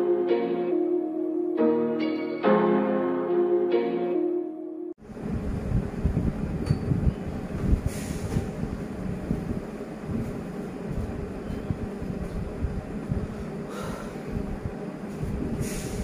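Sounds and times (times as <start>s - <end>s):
low rumbling noise: 5.0s - 16.0s.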